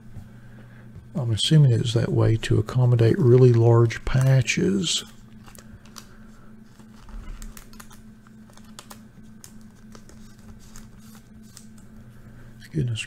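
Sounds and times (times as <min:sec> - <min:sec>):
steady low hum: 0:00.0 - 0:13.0
fingers handling plastic sleeve: 0:03.1 - 0:11.9.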